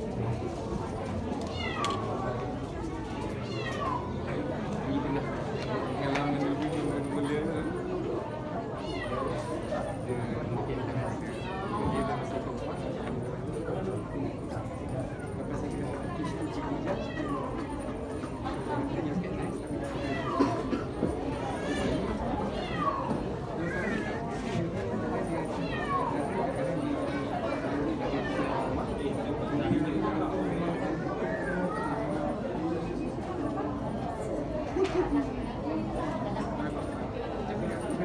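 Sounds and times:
murmur of voices: 0.0 - 38.0
cat meowing: 1.5 - 2.0.

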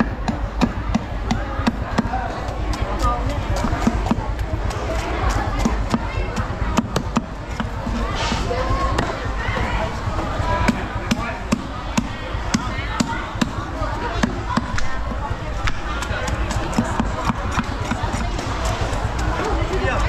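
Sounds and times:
cleaver chopping on wooden block: 15.6 - 18.9.

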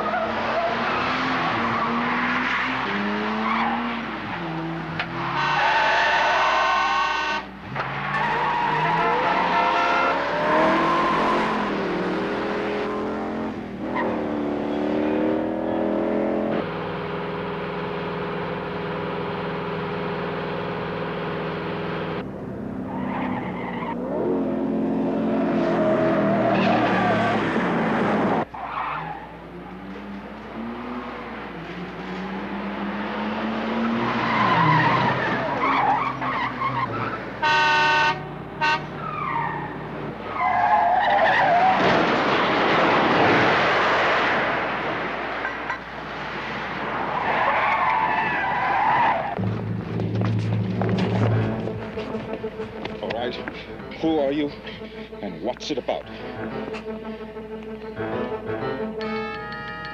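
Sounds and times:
tires squealing: 0.0 - 16.6, 22.8 - 59.9
car engines revving: 0.0 - 59.9
car horn blasts: 5.3 - 7.5, 37.4 - 39.0, 59.0 - 59.9.

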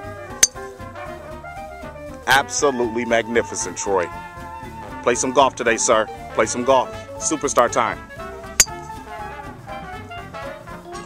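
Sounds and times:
background music: 0.0 - 11.0
golf club striking ball: 0.4 - 0.7, 8.6 - 8.8.

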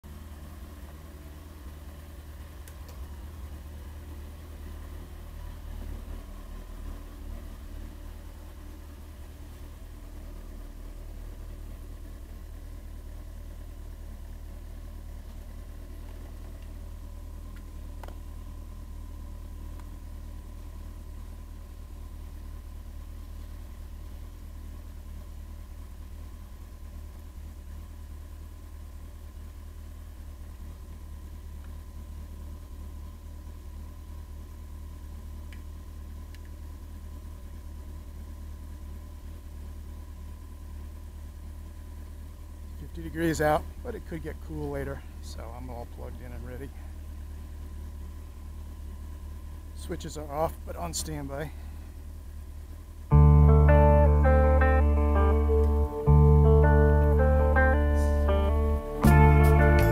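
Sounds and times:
motorcycle engine idling: 0.0 - 59.9.

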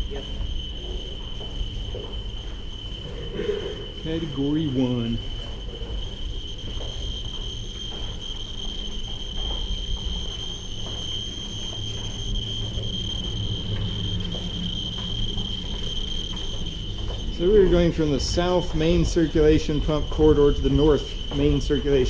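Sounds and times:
steady high-pitched tone: 0.0 - 22.0.

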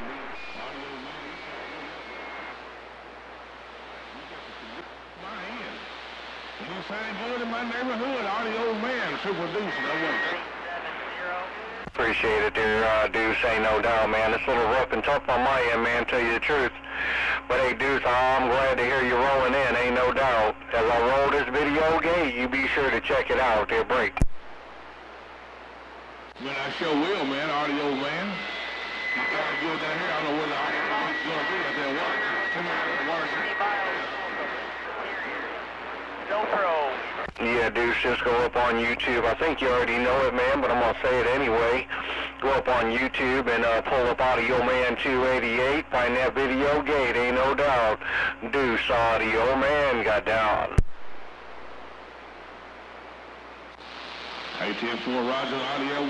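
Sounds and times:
faint voice over radio: 0.0 - 2.7, 3.8 - 5.9, 6.6 - 24.2, 29.2 - 50.8
steady radio whistle: 0.0 - 3.0, 3.8 - 14.8, 26.4 - 42.5, 53.8 - 56.0
radio static: 0.0 - 56.0.

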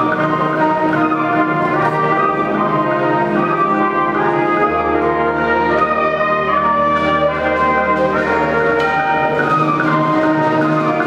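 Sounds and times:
concert band playing chords: 0.0 - 11.0.

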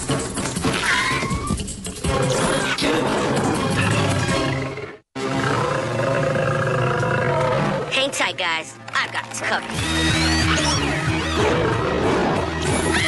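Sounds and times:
large animal roaring: 3.8 - 7.9
dramatic action music: 7.9 - 13.0.

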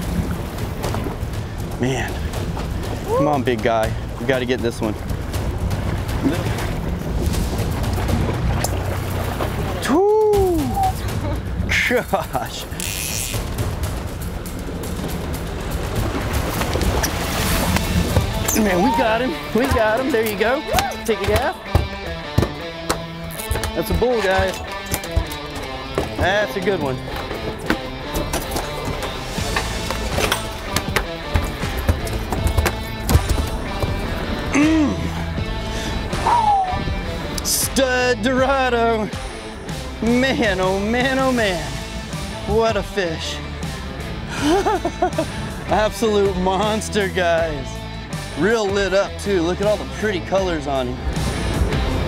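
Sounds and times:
background music: 0.0 - 52.0
boat engine rumble: 0.0 - 52.0
water noise: 0.0 - 52.0
wind: 0.0 - 52.0
fish splashing: 5.1 - 9.8, 12.6 - 20.0.

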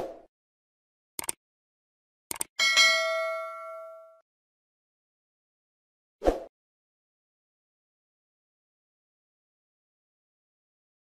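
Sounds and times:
notification bell ding: 2.6 - 4.2.

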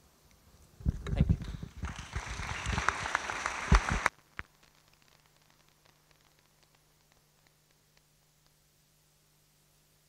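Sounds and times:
audience applause: 1.6 - 4.2.

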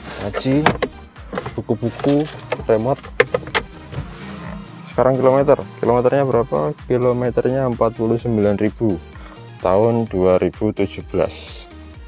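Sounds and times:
glove compartment clicks: 0.4 - 4.0.

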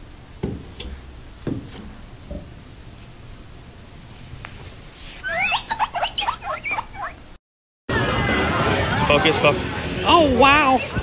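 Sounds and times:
high-pitched upward squeaks: 5.2 - 7.2.

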